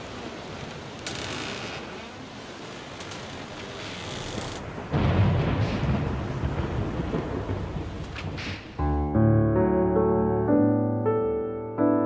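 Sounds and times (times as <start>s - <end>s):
piano music: 8.8s - 12.0s.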